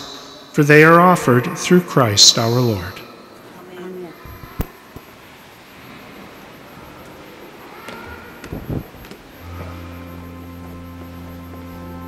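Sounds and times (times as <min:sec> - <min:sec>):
church organ held chord: 0:00.0 - 0:03.5, 0:09.3 - 0:12.0.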